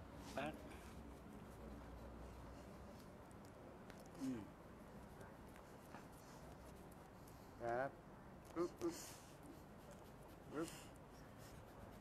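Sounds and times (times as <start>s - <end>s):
faint scratchy background noise: 0.0s - 12.0s.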